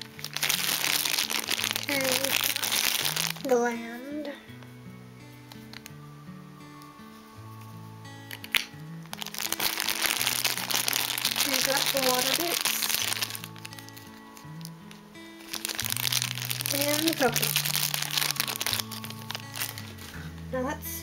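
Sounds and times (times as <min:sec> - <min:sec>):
plastic bag crinkling: 0:00.0 - 0:03.6, 0:08.3 - 0:20.2
background music: 0:00.0 - 0:21.0.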